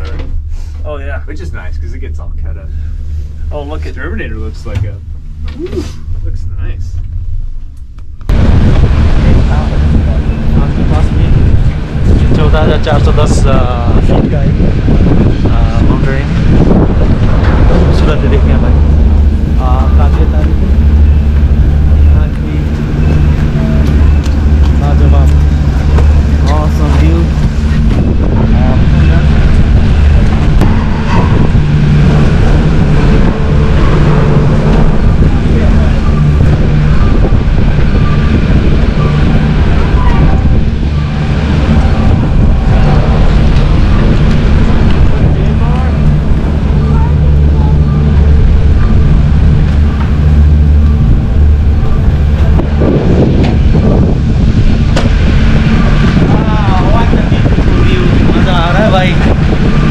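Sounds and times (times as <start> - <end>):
low machine rumble: 0.0 - 59.9.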